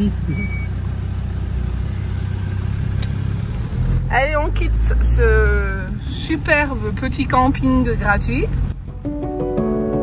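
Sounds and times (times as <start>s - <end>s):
car engine low rumble: 0.0s - 10.0s.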